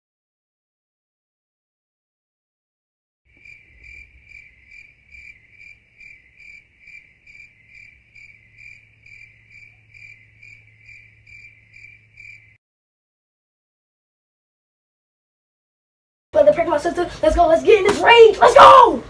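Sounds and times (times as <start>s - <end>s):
cricket chirping: 3.3s - 12.6s.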